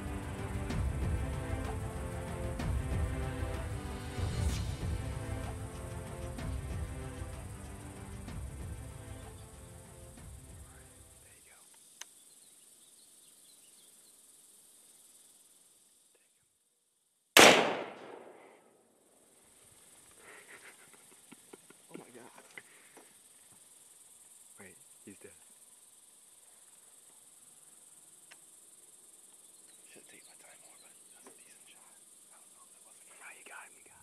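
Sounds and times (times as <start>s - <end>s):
rifle shot with echo: 17.4s - 18.8s.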